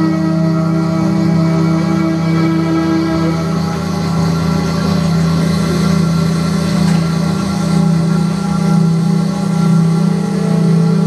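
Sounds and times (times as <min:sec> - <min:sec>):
bowed violin tones: 0:00.0 - 0:11.0
low electronic drone: 0:00.0 - 0:11.0.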